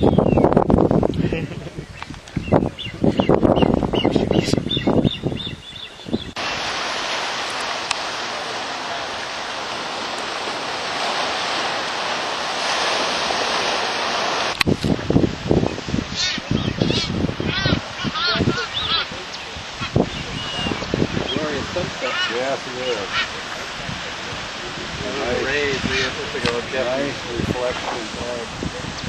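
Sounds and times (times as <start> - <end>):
wind rumbling on microphone: 0.0 - 29.0
high bird calls: 1.2 - 7.2, 15.7 - 23.5
surf washing on rocky shore: 6.3 - 29.0.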